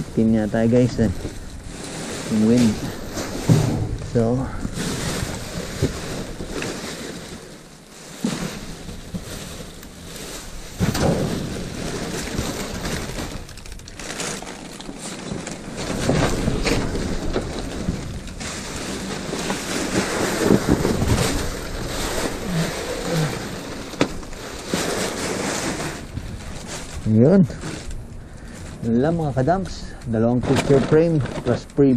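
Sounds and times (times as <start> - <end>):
plastic and cardboard crinkling: 0.0 - 31.9
wind gusting over microphone: 15.8 - 29.7.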